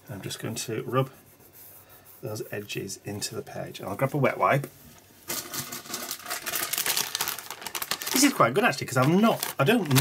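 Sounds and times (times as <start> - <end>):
plastic pack crinkling: 5.3 - 10.0.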